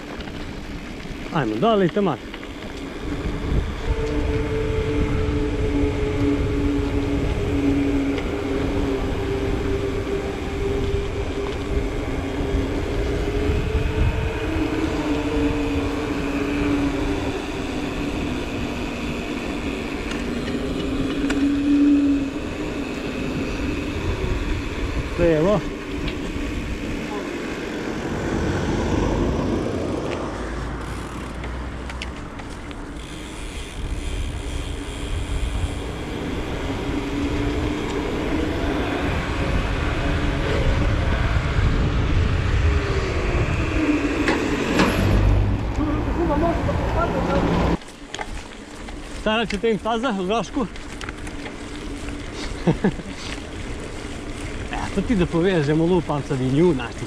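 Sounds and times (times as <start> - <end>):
tyres humming on asphalt: 0.0 - 57.0
wind buffeting microphone: 0.0 - 57.0.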